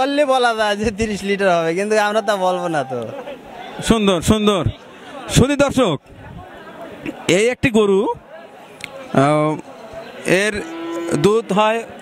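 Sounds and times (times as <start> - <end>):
cow mooing: 10.4 - 11.6.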